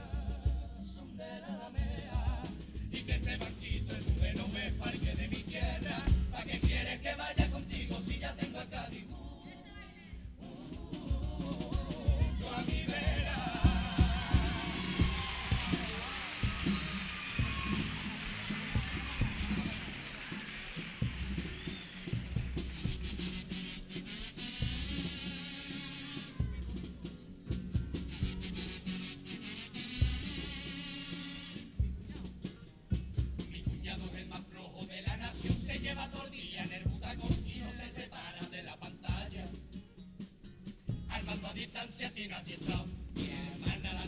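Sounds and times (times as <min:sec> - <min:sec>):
drums playing a rhythm: 0:00.0 - 0:01.2, 0:01.8 - 0:44.0
audience whistling: 0:12.9 - 0:26.2
audience applauding: 0:13.4 - 0:23.8.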